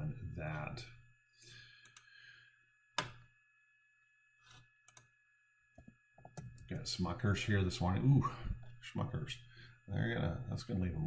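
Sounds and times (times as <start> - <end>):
low room hum: 0.0 - 3.6, 5.8 - 11.0
soft breath: 1.4 - 2.6
computer mouse clicks: 1.8 - 2.1, 4.9 - 5.1.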